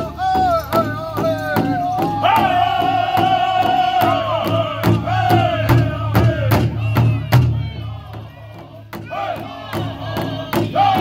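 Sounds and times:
large drum beating: 0.0s - 11.0s
men singing in high voices: 0.0s - 11.0s.

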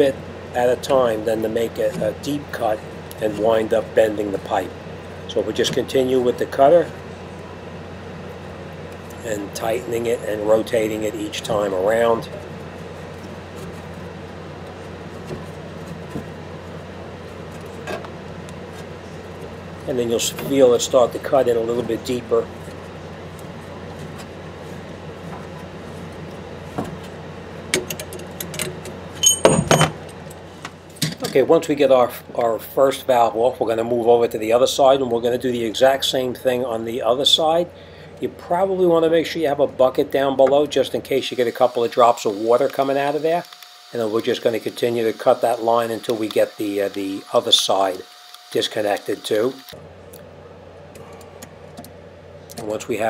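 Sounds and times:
low steady hum: 0.0s - 53.0s
metallic clatter with ringing: 29.2s - 30.0s.

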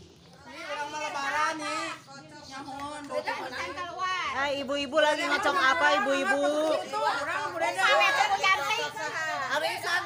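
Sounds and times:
women chattering: 0.3s - 10.0s.

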